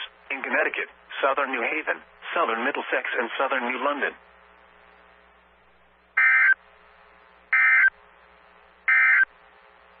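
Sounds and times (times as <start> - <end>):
buzzing electronic data bursts: 6.2 - 6.6, 7.5 - 8.0, 8.9 - 9.3.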